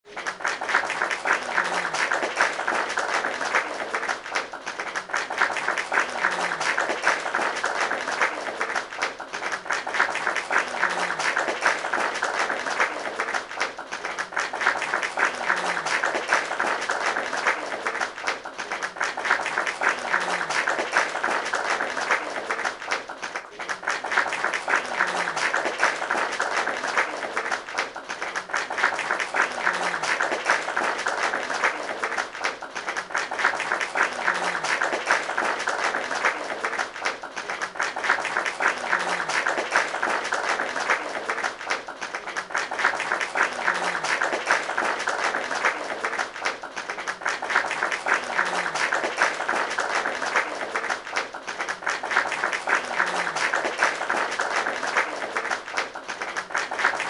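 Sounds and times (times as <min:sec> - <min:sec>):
crowd applauding: 0:00.0 - 0:57.0.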